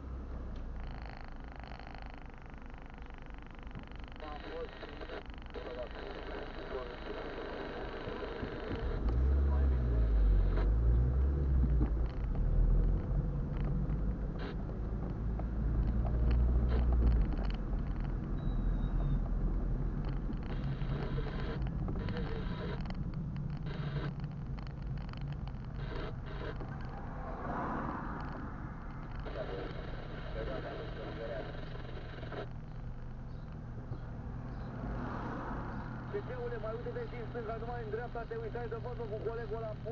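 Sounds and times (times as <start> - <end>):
car engine: 0.0 - 39.9
road rumble: 0.0 - 39.9.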